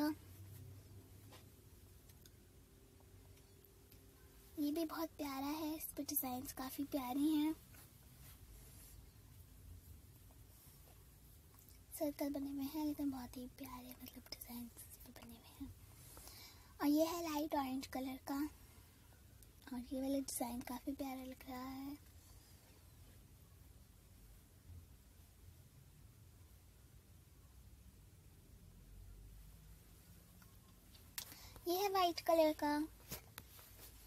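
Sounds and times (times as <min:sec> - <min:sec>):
faint steady hum: 0:00.0 - 0:34.0
soft whispering voice: 0:04.2 - 0:23.1.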